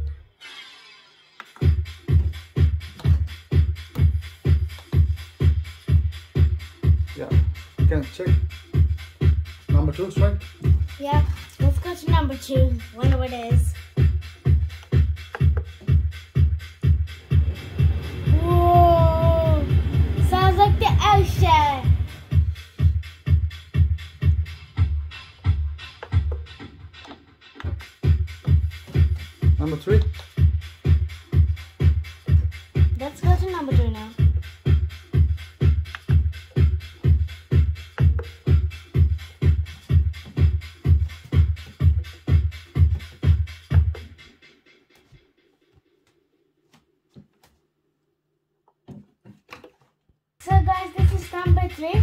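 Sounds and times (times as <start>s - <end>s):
electronic dance music: 0.0s - 45.6s, 50.4s - 52.0s
kick drum: 1.6s - 44.2s, 50.4s - 52.0s.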